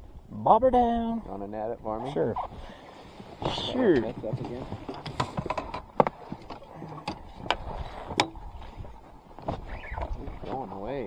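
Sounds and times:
fishing gear knocking and clicking: 4.8s - 8.4s.

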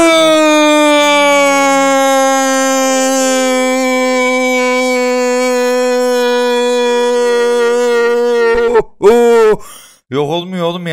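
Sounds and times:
man shouting long cry: 2.7s - 9.6s.

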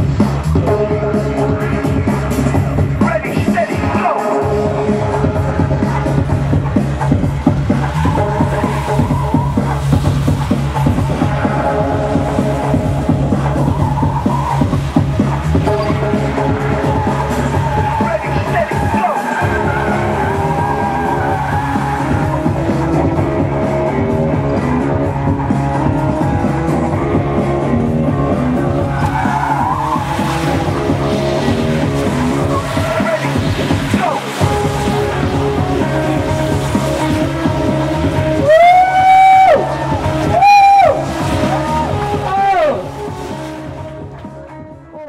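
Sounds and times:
loud music soundtrack: 0.0s - 45.0s
tyres squealing: 7.4s - 23.2s, 28.6s - 43.7s.

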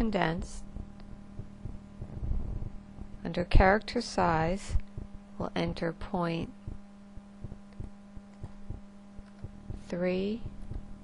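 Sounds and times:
faint low thuds: 0.0s - 5.3s, 6.5s - 11.0s
low hum: 0.0s - 11.0s.

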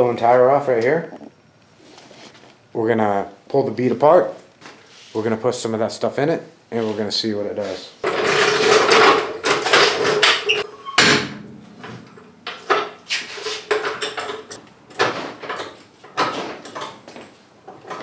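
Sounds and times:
floor jack pumping with metal clanking: 8.0s - 18.0s.

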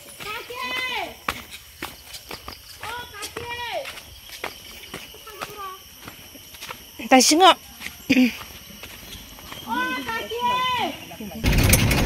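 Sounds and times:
voices speaking: 0.0s - 11.4s.

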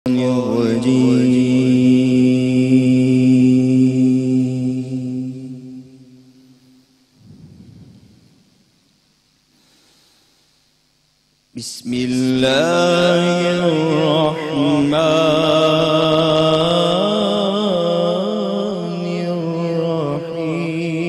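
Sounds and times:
deep chanted vocal note: 0.1s - 8.7s, 11.6s - 21.0s
soft rumble: 7.2s - 9.2s.

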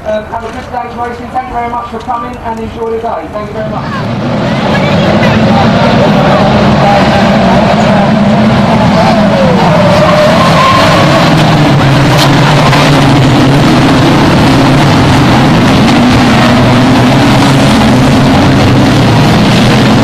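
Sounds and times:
racing car engines revving: 3.6s - 20.0s.

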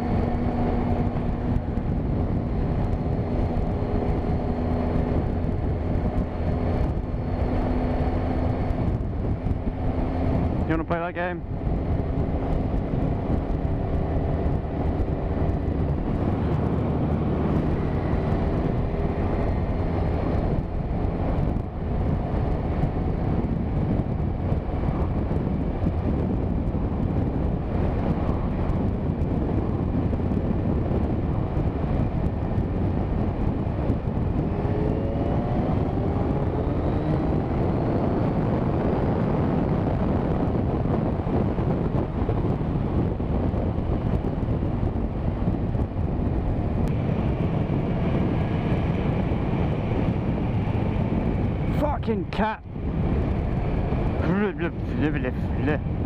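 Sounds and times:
motorcycle engine running: 0.0s - 56.0s
wind rush over microphone: 0.0s - 56.0s.

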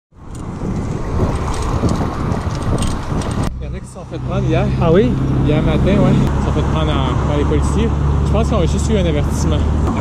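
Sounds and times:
light bicycle rattles: 0.2s - 3.5s
wind buffeting microphone: 0.2s - 8.3s.

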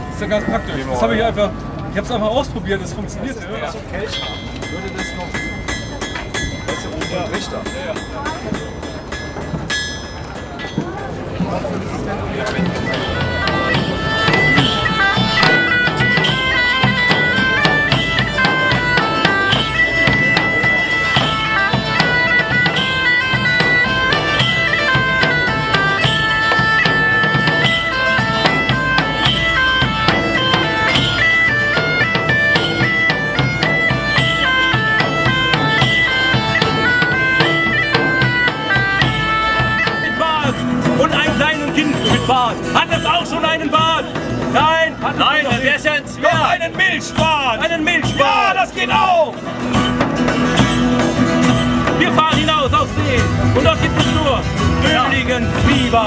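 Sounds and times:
large hand drum: 3.8s - 56.0s
plucked lute: 4.0s - 56.0s
bagpipes playing a lively melody: 11.4s - 56.0s.

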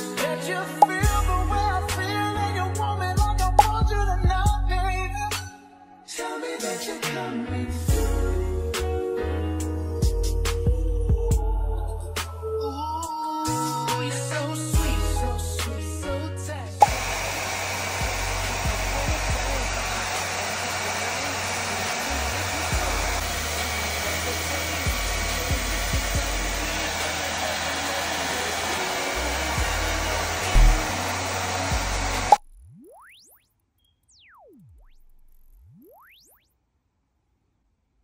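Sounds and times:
hair dryer blowing: 16.8s - 32.4s.

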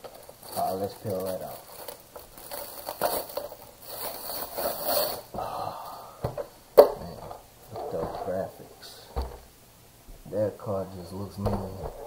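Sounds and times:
plastic wrapping crinkling: 0.0s - 5.4s.

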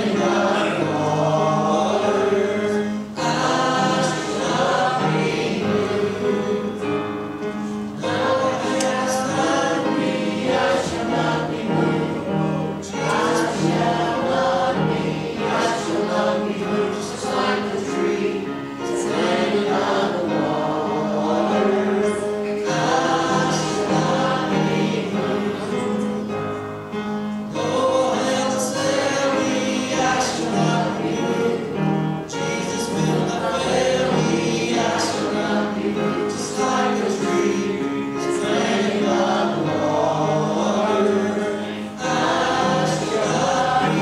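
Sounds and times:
congregation singing a hymn: 0.0s - 44.0s.

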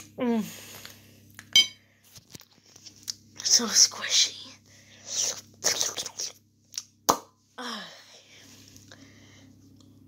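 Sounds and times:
metal spoon clinking on ceramic plate: 1.6s - 1.8s.

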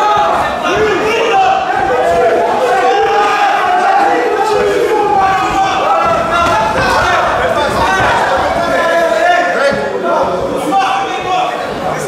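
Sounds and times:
crowd shouting and yelling: 0.0s - 12.0s.

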